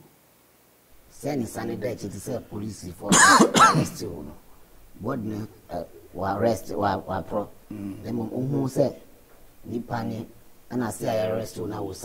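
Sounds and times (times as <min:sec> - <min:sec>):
man's voice: 0:01.1 - 0:12.0
rough throat clearing: 0:03.0 - 0:04.6, 0:07.3 - 0:08.2.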